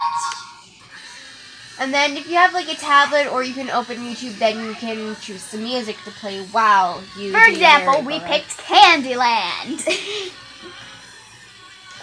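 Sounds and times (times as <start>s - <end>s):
small motor whirring: 0.1s - 12.0s.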